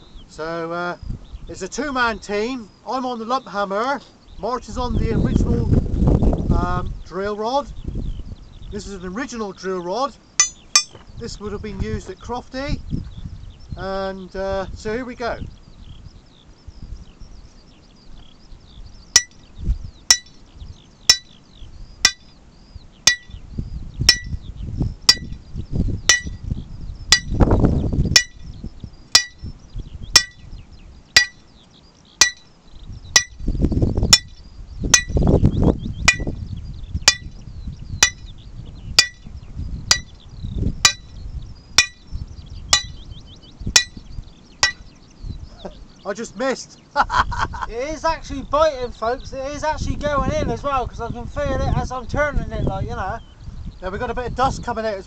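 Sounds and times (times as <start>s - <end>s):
hammer striking steel rod: 10.4s - 11.0s, 19.2s - 19.4s, 20.1s - 20.4s, 21.1s - 21.4s, 22.0s - 22.3s, 23.1s - 23.3s, 24.1s - 24.4s, 25.1s - 25.4s, 26.1s - 26.4s, 27.1s - 27.4s, 28.2s - 28.4s, 29.2s - 29.4s, 30.2s - 30.4s, 31.2s - 31.4s, 32.2s - 32.5s, 33.2s - 33.4s, 34.1s - 34.4s, 35.0s - 35.2s, 36.1s - 36.3s, 37.1s - 37.3s, 38.0s - 38.3s, 39.0s - 39.2s, 39.9s - 40.1s, 40.9s - 41.1s, 41.8s - 42.0s, 42.8s - 43.0s, 43.8s - 44.0s, 44.6s - 44.9s.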